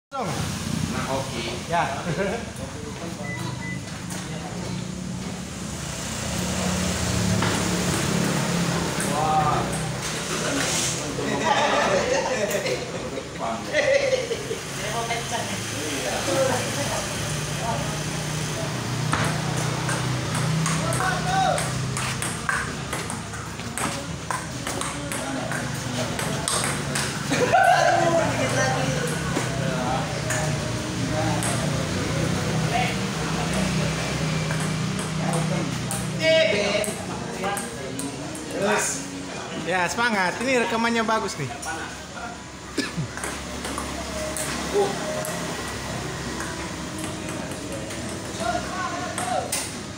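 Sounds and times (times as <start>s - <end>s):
voices talking: 1.2s - 5.4s, 6.6s - 49.9s
table tennis ball clicking: 19.6s - 27.2s.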